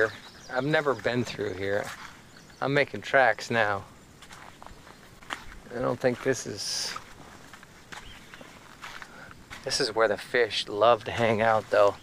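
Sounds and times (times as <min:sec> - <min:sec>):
footsteps on sandy path: 0:00.0 - 0:12.0.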